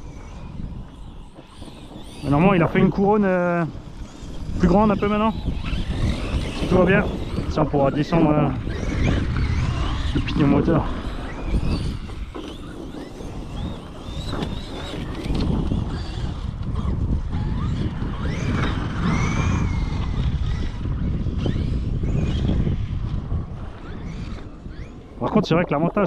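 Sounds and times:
electric motor whine: 0:00.0 - 0:26.0
wind buffeting microphone: 0:00.0 - 0:26.0.

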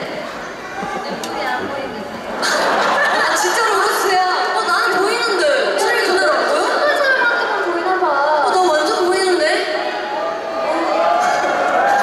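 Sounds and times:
people talking over microphones: 0:00.0 - 0:11.3.

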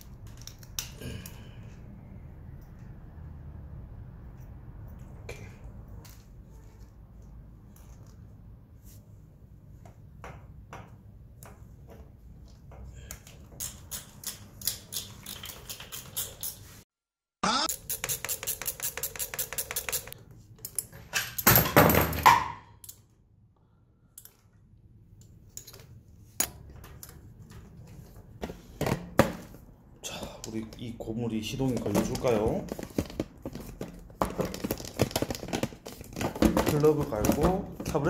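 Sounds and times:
clattering rustle of parts: 0:30.5 - 0:38.0.

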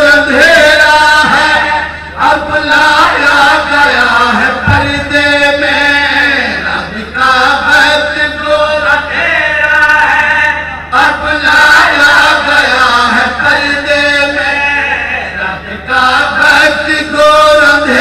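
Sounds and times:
man chanting into a microphone: 0:00.0 - 0:18.0.

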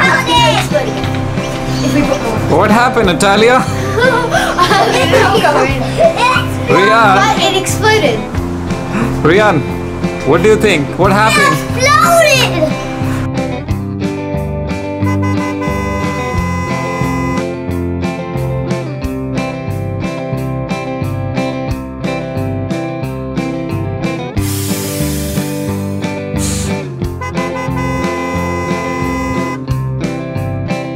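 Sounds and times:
guitar music: 0:00.0 - 0:30.9
repeating bass beat: 0:15.0 - 0:17.5, 0:26.6 - 0:29.6
hissing wash: 0:24.4 - 0:26.8.

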